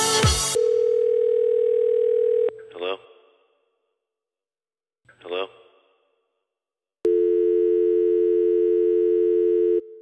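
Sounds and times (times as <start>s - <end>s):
telephone dial tone: 0.6s - 2.5s, 7.1s - 10.0s.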